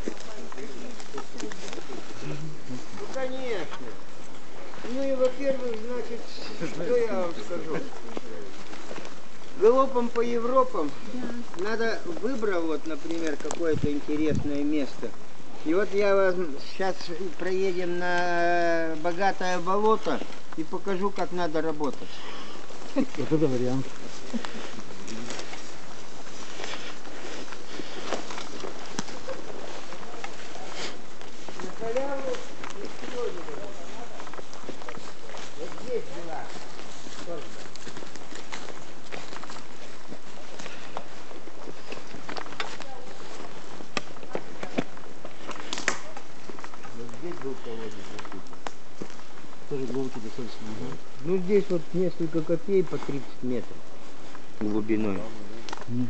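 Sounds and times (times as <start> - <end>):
footsteps through grass: 0.0 - 56.0
undergrowth rustling: 0.0 - 56.0
twig snaps: 45.4 - 46.8.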